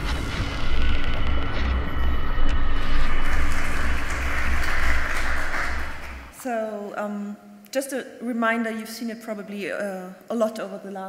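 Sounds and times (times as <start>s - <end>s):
pulsing low rumble: 0.0s - 6.3s
noisy whoosh: 0.0s - 6.4s
woman speaking: 6.4s - 11.0s.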